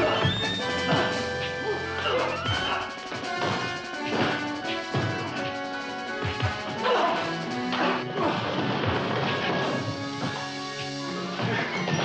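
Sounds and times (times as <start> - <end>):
orchestral fight music: 0.0 - 11.8
punches and crashing blows: 2.2 - 10.5.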